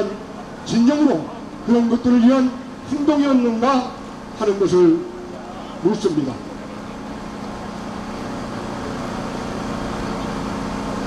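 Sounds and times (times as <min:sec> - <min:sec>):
street traffic drone: 0:00.0 - 0:11.0.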